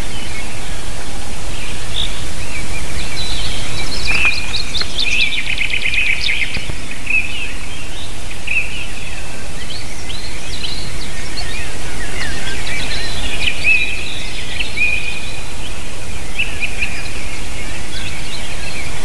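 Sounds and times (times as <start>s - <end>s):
birds singing and chirping: 0.0s - 19.0s
steady low background noise: 0.0s - 19.0s.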